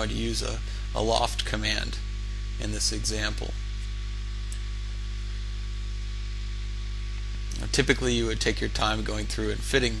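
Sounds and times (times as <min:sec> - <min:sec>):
electrical hum with buzzing: 0:00.0 - 0:10.0.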